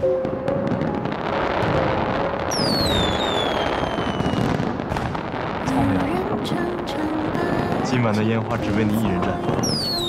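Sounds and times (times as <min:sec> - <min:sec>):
crackle of bursting fireworks: 0:00.0 - 0:10.0
firework whistle falling in pitch: 0:02.5 - 0:04.5.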